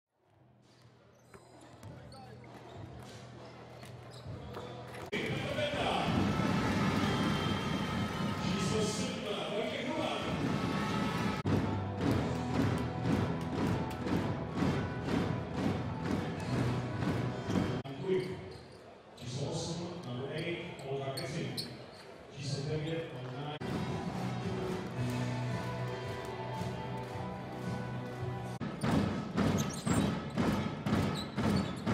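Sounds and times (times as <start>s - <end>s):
crowd noise: 0.2s - 31.8s
voice over loudspeakers: 5.1s - 6.7s, 8.2s - 10.5s
basketballs bouncing on hardwood: 11.5s - 17.8s, 28.6s - 31.9s.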